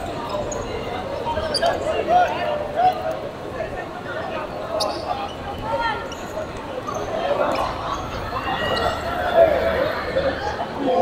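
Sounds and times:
players shouting: 0:06.9 - 0:11.0.

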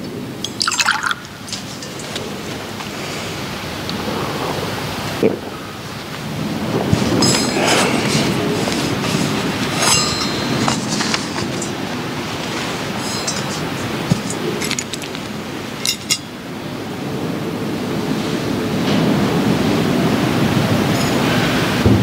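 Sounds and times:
rustling and rubbing: 0:06.2 - 0:16.1
metal and glass clinks: 0:07.1 - 0:16.4.

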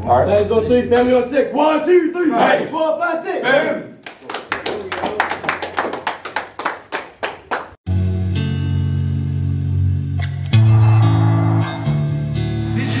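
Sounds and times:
group clapping in unison: 0:04.0 - 0:07.8
music with bass and guitar: 0:07.9 - 0:13.0.

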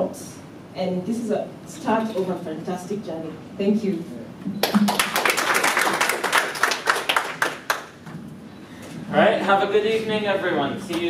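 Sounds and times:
audience applauding: 0:04.6 - 0:08.0.

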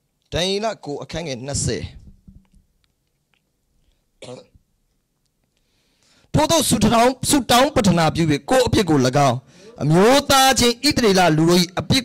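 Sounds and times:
man speaking into a microphone: 0:00.3 - 0:02.1, 0:06.3 - 0:12.0.

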